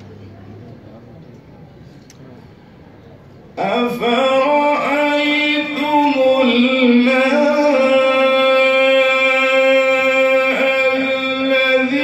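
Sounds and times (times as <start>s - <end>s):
man reciting melodically: 3.5s - 12.0s.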